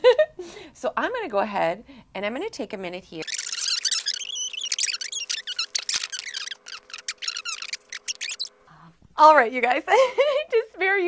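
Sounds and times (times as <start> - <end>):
plastic squeaking and crinkling: 3.2 - 8.5.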